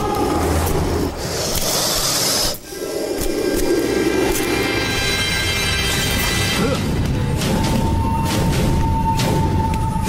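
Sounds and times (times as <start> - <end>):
low drone of background score: 0.0 - 10.0.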